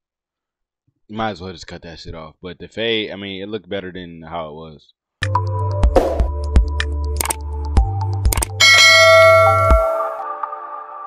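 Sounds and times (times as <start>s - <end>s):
sharp clicks: 7.2s - 7.4s, 8.3s - 8.6s
notification bell chime: 8.6s - 10.2s.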